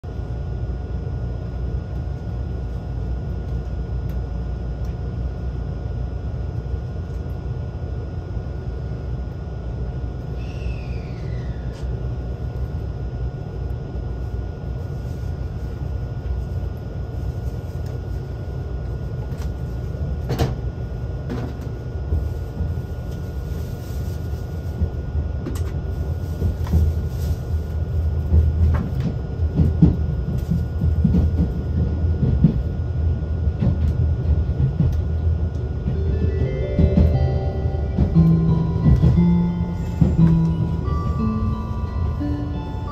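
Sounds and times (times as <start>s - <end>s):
train running gear rumble: 0.0s - 42.9s
falling whine: 35.8s - 42.9s.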